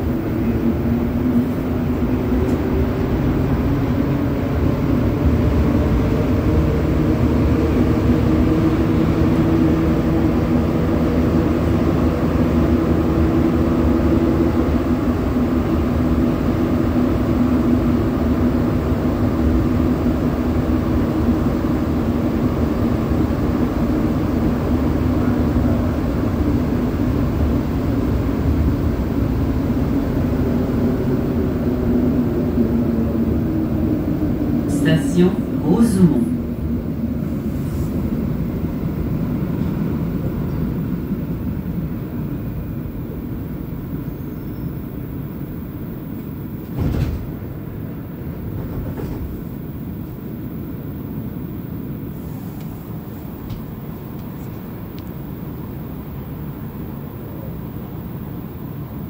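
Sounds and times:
train running gear rumble: 0.0 - 59.0.

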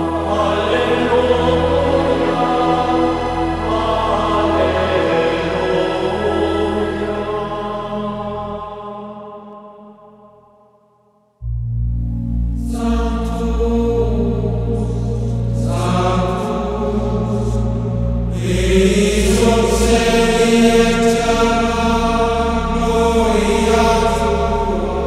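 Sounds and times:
low drone: 0.0 - 9.0, 11.4 - 25.0
chant singing: 0.0 - 10.5, 12.6 - 25.0.

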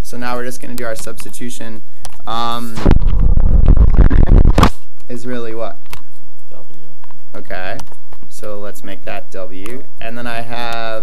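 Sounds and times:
loud rough low rumbling: 2.3 - 5.6.

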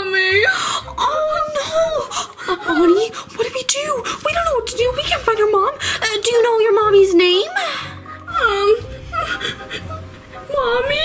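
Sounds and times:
child pretend crying: 0.0 - 4.7, 7.3 - 11.0.

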